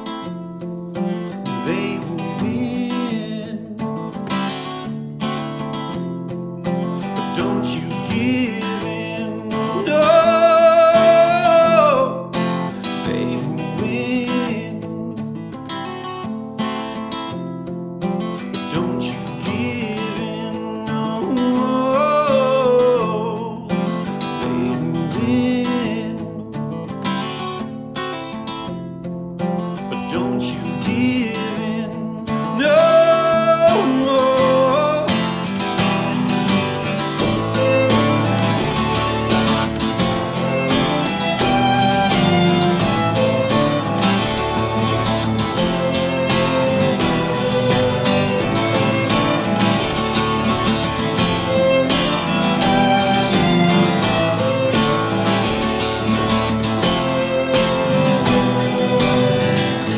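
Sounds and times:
acoustic guitar: 0.0 - 59.9
string trio playing: 35.8 - 59.9.

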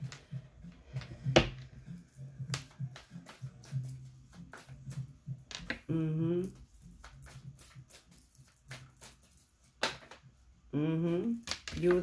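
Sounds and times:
cards being shuffled: 0.9 - 10.3.

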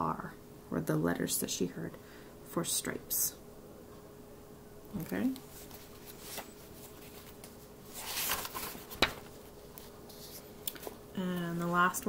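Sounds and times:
paper pages rustling: 5.0 - 12.0.

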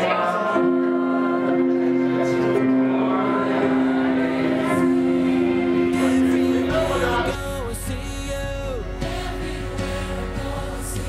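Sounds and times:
group singing: 0.0 - 11.0.

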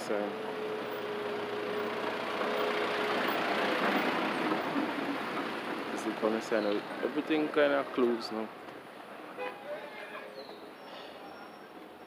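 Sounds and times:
truck driving past: 0.0 - 8.0.

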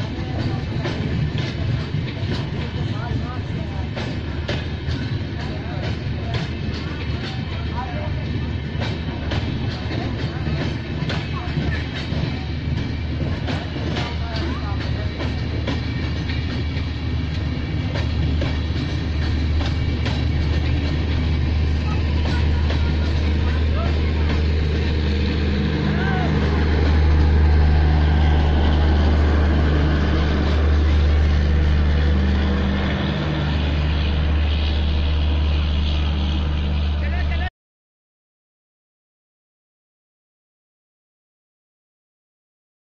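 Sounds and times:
train wheels rumbling on rail: 0.0 - 37.5.

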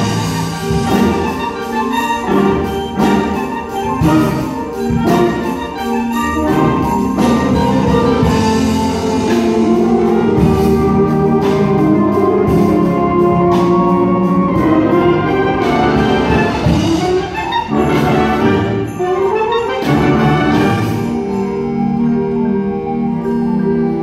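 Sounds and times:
percussion striking: 0.0 - 22.1
concert band playing: 0.0 - 24.0.

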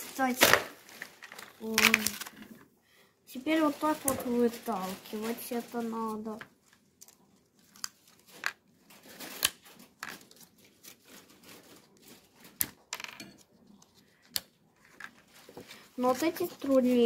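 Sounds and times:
plastic packaging crinkling: 0.0 - 2.6, 3.4 - 12.9, 14.8 - 17.0.

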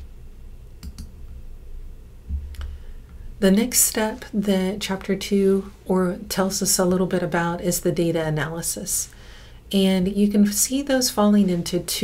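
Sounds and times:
faint low room hum: 0.0 - 12.0
computer mouse clicks: 0.8 - 1.1.

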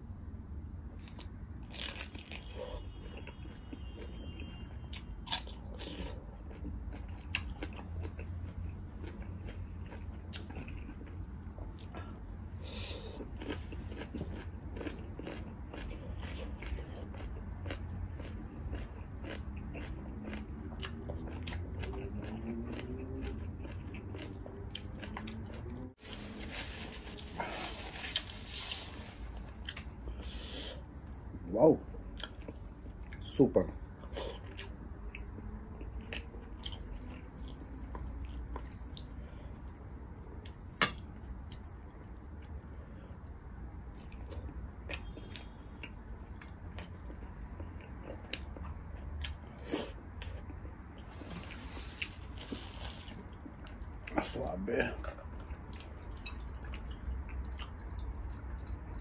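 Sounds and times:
chewing and biting: 4.9 - 25.9, 33.9 - 39.8, 43.9 - 54.4, 55.0 - 59.0.

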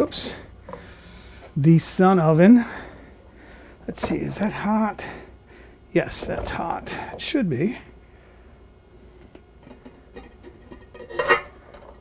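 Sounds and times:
lid clattering: 9.6 - 12.0.

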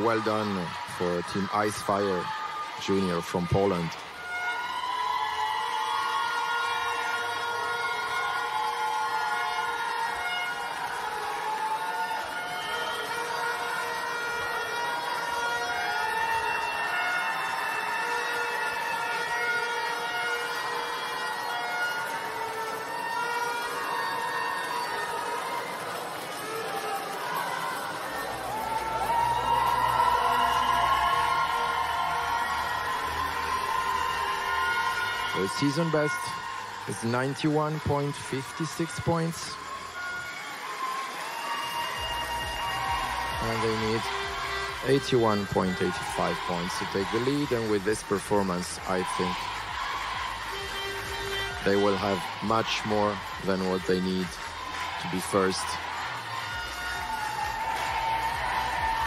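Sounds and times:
music over sound system: 0.0 - 59.0.

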